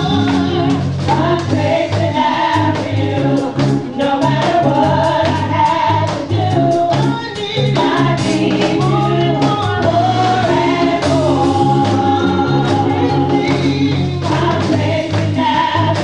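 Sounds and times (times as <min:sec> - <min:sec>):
band accompaniment: 0:00.0 - 0:16.0
gospel choir singing: 0:00.0 - 0:16.0.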